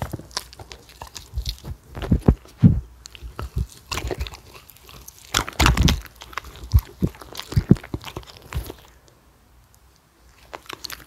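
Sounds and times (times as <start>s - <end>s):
dogs chewing crunchy food: 0.0s - 11.0s.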